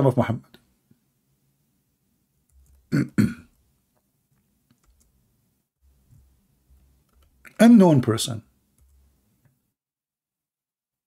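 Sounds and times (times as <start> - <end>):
man clearing his throat: 2.9 - 3.6.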